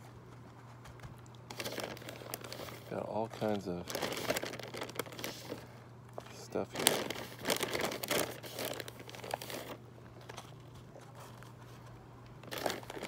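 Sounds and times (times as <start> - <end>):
plastic bag crinkling: 1.4 - 11.7, 12.4 - 13.0.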